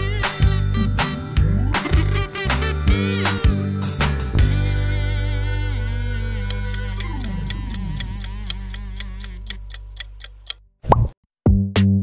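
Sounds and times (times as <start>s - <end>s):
background music: 0.0s - 8.8s
countdown timer ticking: 6.4s - 10.6s.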